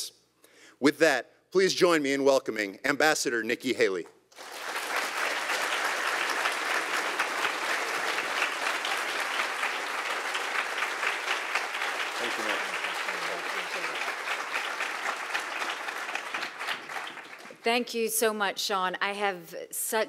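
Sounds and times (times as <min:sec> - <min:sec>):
audience applauding: 0:04.3 - 0:17.7.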